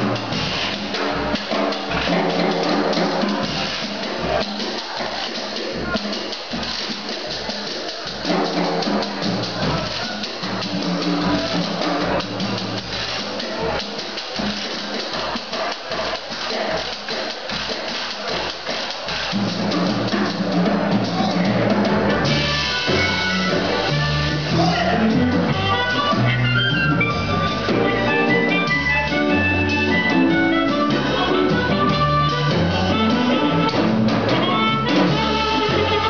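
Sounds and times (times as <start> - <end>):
drum kit beat: 0.0 - 36.0
live blues band playing: 0.0 - 36.0
electric bass: 21.1 - 36.0
harmonica: 22.4 - 36.0.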